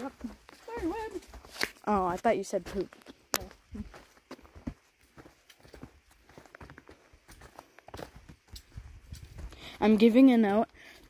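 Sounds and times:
footsteps on dry leaves and twigs: 0.0 - 11.0.

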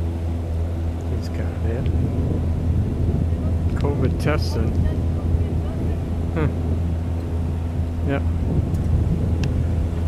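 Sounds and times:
motor engine drone: 0.0 - 10.0.

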